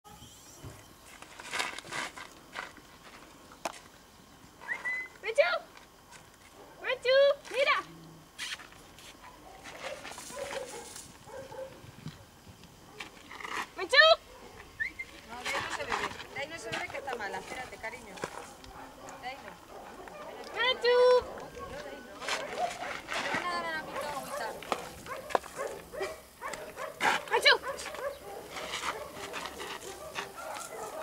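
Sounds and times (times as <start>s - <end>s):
quiet rustling: 21.3s - 31.0s.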